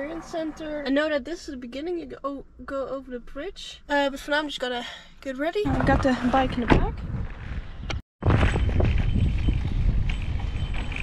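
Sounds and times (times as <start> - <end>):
wind buffeting microphone: 5.6 - 11.0.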